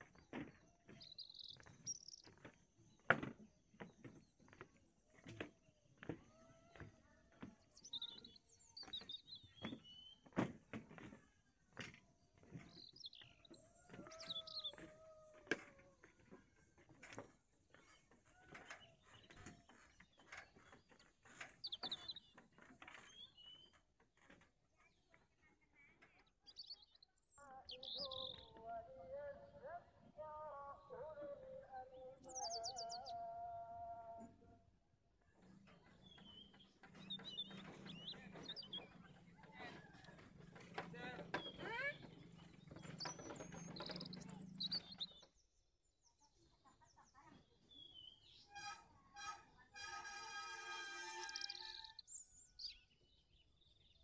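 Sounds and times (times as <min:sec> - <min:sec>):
wooden bridge creaking: 0:00.0 - 0:27.0, 0:35.2 - 0:45.4, 0:47.4 - 0:52.0
small birds chirping: 0:00.0 - 0:29.7, 0:30.8 - 0:33.3, 0:35.3 - 0:49.4, 0:51.2 - 0:54.0.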